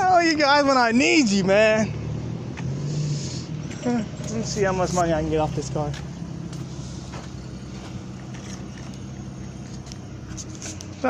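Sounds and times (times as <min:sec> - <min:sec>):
low mechanical hum: 0:06.0 - 0:11.0.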